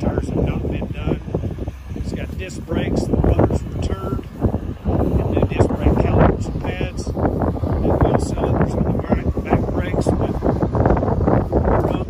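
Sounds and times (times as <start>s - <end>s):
indistinct voices: 0.0s - 12.0s
wind buffeting microphone: 0.0s - 12.0s.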